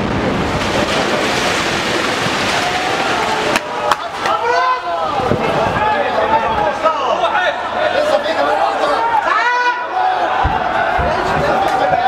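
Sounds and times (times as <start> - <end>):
roar of falling debris: 0.0 - 4.4
sharp cracks: 0.0 - 4.4.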